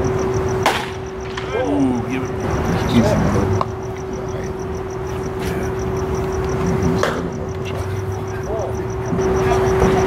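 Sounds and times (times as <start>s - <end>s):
baseball striking with sharp crack: 0.6s - 1.6s, 6.6s - 7.3s.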